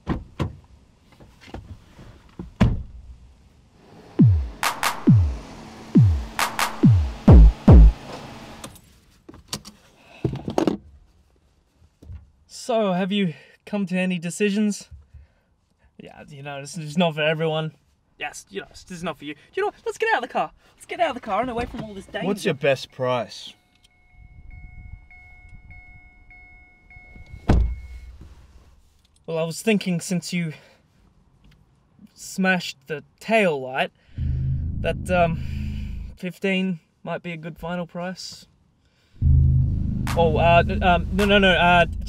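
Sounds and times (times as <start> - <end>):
music: 4.2 - 5.4, 6.0 - 8.0, 39.2 - 42.0
low rumble: 4.2 - 8.0, 34.2 - 36.2, 39.2 - 42.0
car door warning chime: 22.0 - 28.1
car door shutting: 27.3 - 28.2.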